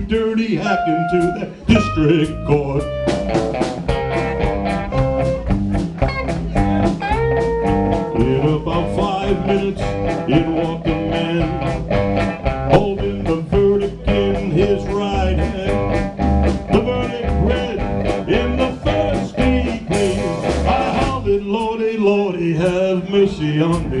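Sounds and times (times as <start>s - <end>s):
drum kit beat: 0.0s - 24.0s
electric bass: 0.0s - 24.0s
electric guitar lead: 0.6s - 21.3s.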